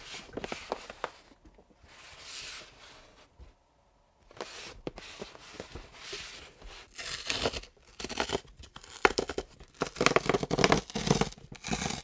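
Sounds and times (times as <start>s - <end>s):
cardboard tearing: 6.8s - 12.0s.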